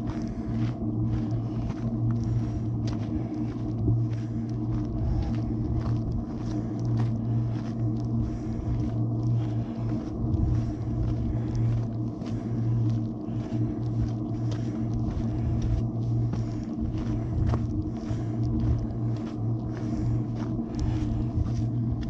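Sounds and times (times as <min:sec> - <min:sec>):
footsteps on rocky gravel: 0:00.0 - 0:22.0
steady low hum: 0:00.0 - 0:22.0.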